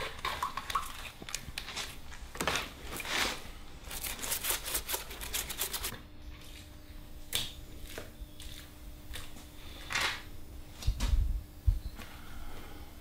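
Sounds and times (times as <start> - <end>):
faint steady hum: 0.0 - 13.0
paper crackling rustles: 1.6 - 5.9.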